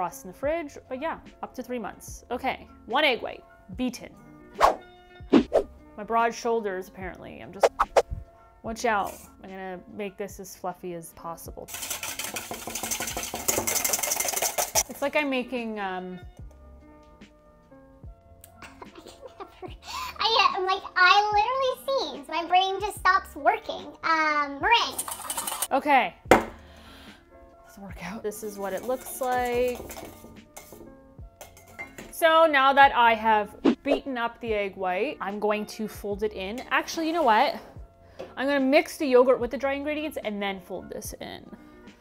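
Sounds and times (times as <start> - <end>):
soft background music: 0.0 - 42.0
whisk beating in metal bowl: 11.6 - 15.0, 24.9 - 25.7, 28.4 - 30.8, 31.4 - 31.9.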